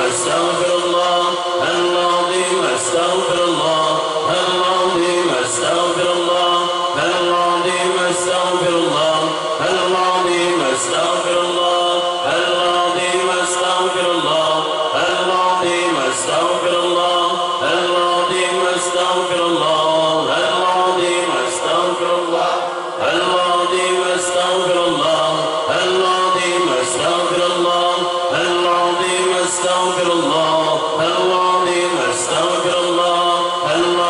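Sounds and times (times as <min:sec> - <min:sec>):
men chanting in unison: 0:00.0 - 0:34.0.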